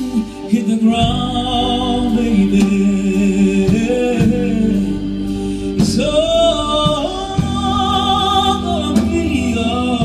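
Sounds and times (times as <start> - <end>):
live band playing soul music: 0.0 - 10.0
woman singing lead vocal: 0.0 - 10.0.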